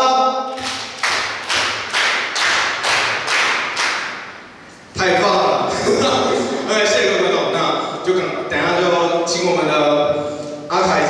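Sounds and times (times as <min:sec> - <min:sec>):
audience clapping in time: 0:00.5 - 0:04.3.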